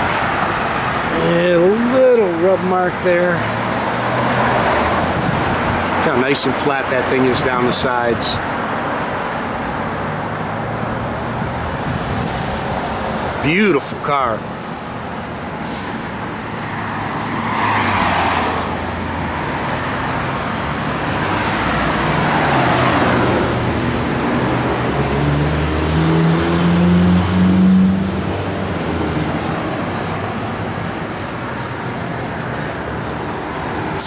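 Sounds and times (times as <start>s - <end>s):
vehicles swishing by: 0.0s - 34.0s
vehicle engine accelerating: 16.7s - 34.0s.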